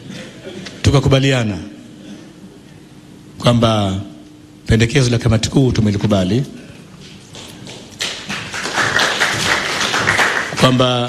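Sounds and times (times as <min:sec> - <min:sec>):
people applauding: 0:07.2 - 0:11.0.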